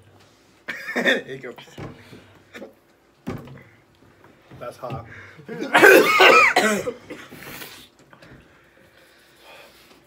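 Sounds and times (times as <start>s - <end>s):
faint breathing: 5.1s - 5.5s, 7.2s - 10.0s.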